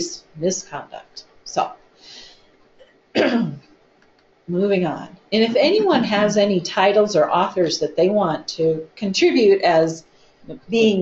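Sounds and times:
faint breath: 2.0 - 2.6
person clearing throat: 3.2 - 3.7.

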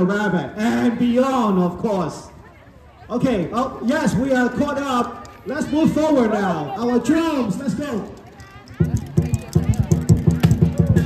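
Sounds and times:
fast drum beat: 8.6 - 11.0.

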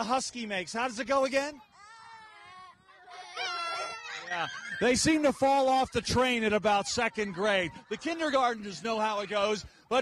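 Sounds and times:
children howling: 1.7 - 8.9.

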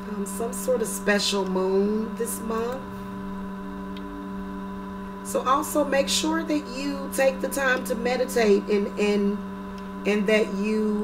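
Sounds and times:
steady low hum: 0.0 - 11.0
faint held tones: 2.5 - 5.5.

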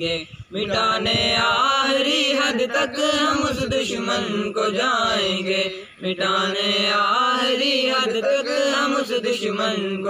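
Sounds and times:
boys singing together: 0.0 - 10.0.

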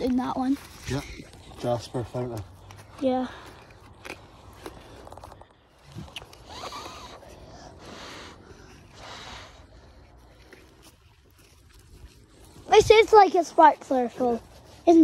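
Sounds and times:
rustling and scraping: 0.0 - 7.4, 8.6 - 15.0.

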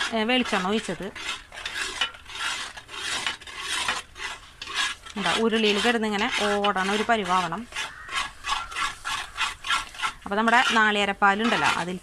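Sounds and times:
spatula scraping metal pan: 0.0 - 12.0.

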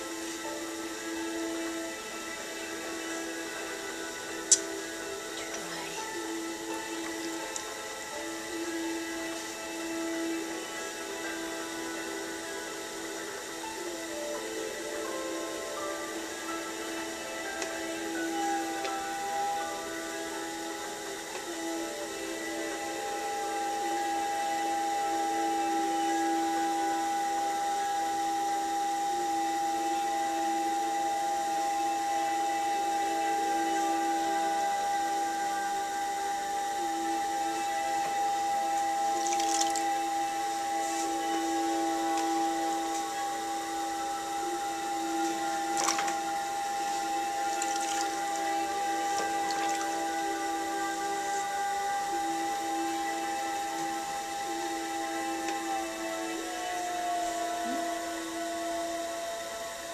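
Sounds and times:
pottery wheel motor whine: 0.0 - 59.9
wet clay clicks and splashes: 39.2 - 39.8.

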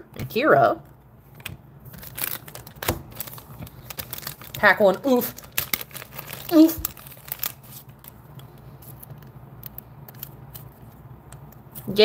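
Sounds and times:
low room hum: 0.0 - 12.0
plastic sleeve rustling: 1.3 - 11.1.

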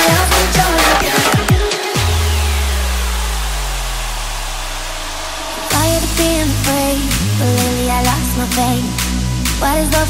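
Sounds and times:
falling synth sweep: 0.0 - 8.4
electronic dance music melody: 0.0 - 10.0
deep synth bass note: 2.0 - 9.6.

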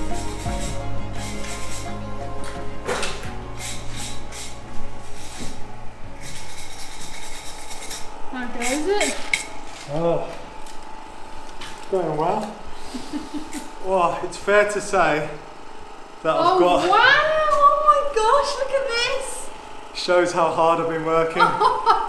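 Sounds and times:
brush scrubbing stones: 0.0 - 2.0, 6.2 - 8.1
background music: 0.0 - 7.4.

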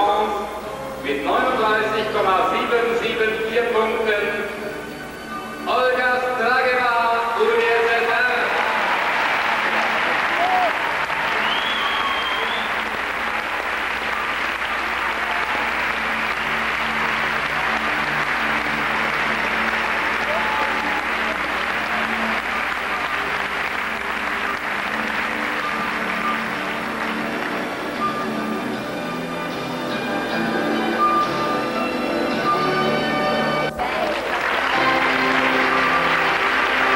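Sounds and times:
music playing: 0.0 - 36.9
crowd applauding: 8.0 - 28.6, 33.7 - 36.9.

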